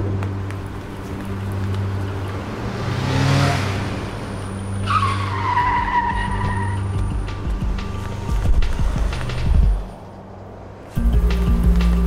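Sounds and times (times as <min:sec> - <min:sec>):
car tyres screeching: 0:00.0 - 0:10.9.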